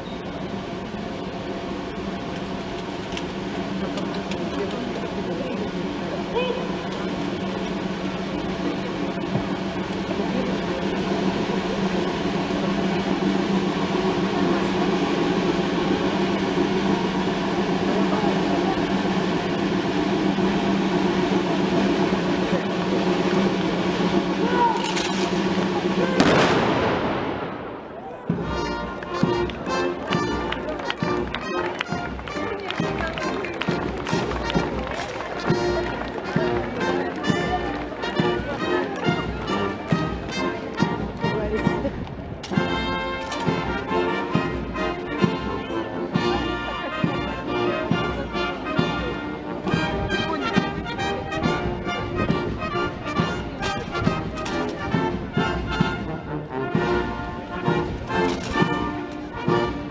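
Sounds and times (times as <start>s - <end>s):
brass band music: 0.0s - 59.9s
march with steady beat: 0.0s - 59.9s.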